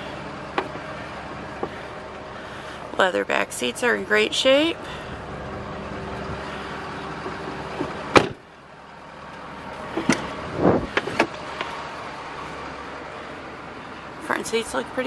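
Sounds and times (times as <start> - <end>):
steady cab hum: 0.0 - 15.0
truck door slamming: 7.2 - 8.4, 9.9 - 11.4
door clicks and thump: 7.8 - 8.4.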